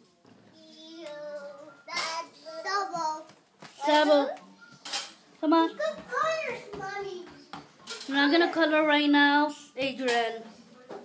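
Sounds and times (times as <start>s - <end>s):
child's sing-song vocalization: 0.5s - 3.3s.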